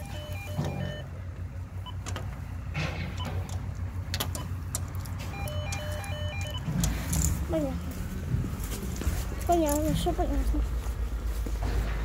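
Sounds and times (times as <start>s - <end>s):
intercom electronic beep tones: 0.0s - 1.1s, 5.3s - 6.7s
low steady rumble: 0.0s - 12.0s.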